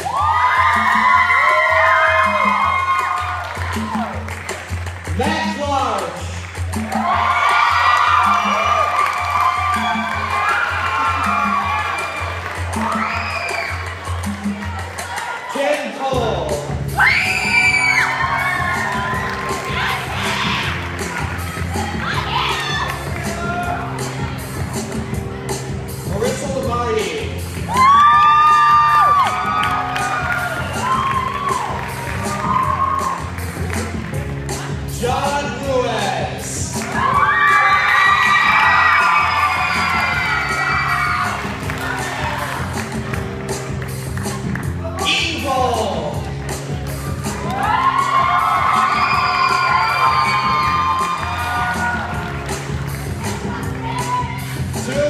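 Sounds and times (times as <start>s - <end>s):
music with steady beat: 0.0s - 15.3s, 16.1s - 55.0s
audience screaming and cheering: 0.0s - 55.0s.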